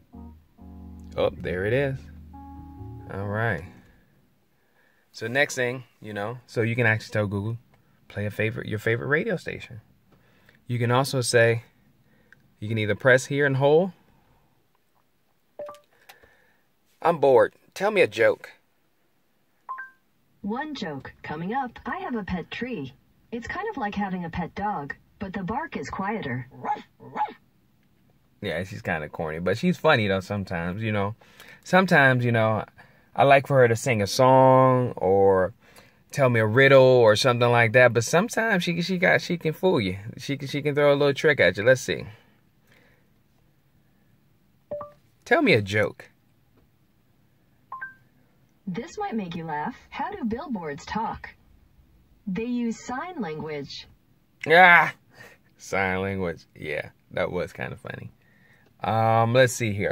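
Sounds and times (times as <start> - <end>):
two-note rising beep: 0.0 - 4.0.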